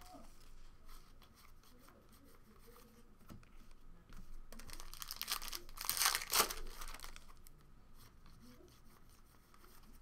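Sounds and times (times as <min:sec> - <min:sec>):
card pack wrapper crinkling and tearing: 0:04.6 - 0:07.4.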